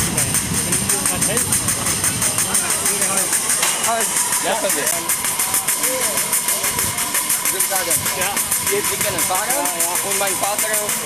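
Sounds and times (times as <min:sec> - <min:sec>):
steam locomotive puffing: 0:00.0 - 0:11.0.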